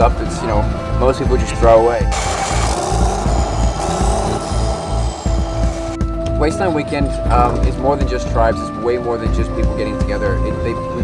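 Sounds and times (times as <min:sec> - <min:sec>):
thin high tone: 0:02.1 - 0:06.2
music with low beat: 0:02.1 - 0:07.9.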